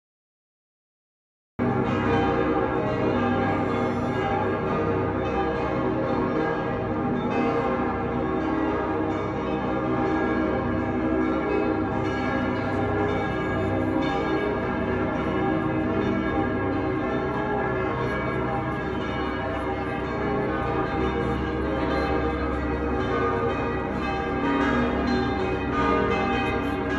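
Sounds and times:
church bells pealing: 1.6 - 26.9.

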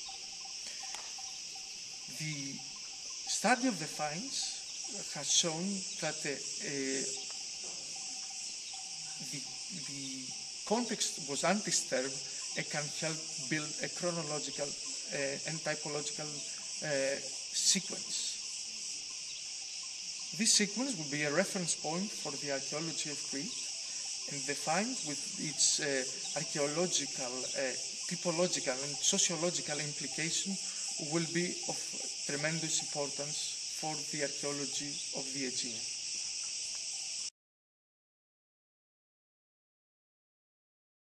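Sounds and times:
insects chirring: 0.0 - 37.3.

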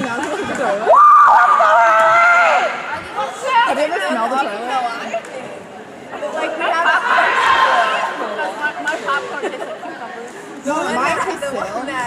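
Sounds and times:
people chatting: 0.0 - 0.9, 2.6 - 12.0.

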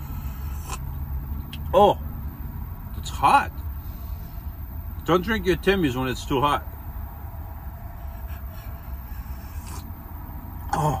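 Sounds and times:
low steady rumble: 0.0 - 11.0
voiced exhale: 7.9 - 9.9.

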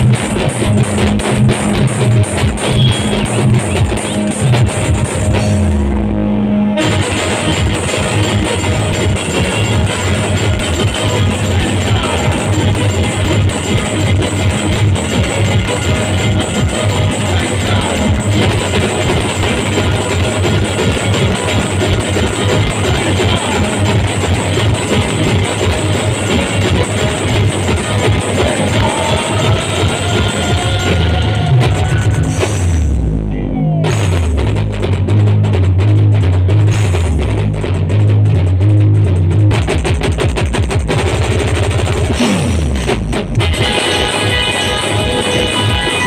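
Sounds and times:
live band music: 0.0 - 39.6, 40.8 - 46.0.

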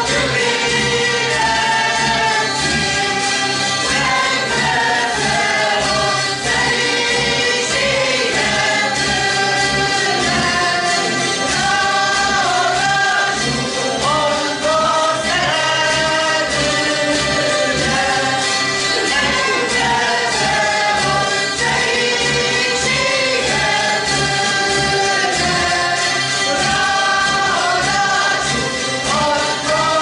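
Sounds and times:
group singing: 0.0 - 30.0
zither ensemble strumming: 0.0 - 30.0.

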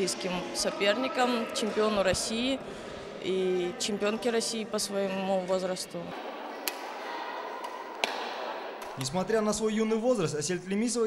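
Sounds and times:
sports hall background noise: 0.0 - 11.0
badminton rackets hitting shuttlecocks: 6.6 - 9.0.

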